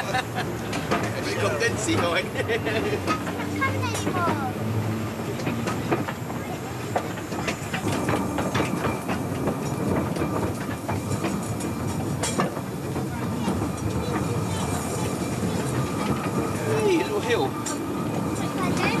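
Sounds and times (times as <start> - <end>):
steam train rumbling: 0.0 - 19.0
wheels clicking and rattling: 0.0 - 19.0.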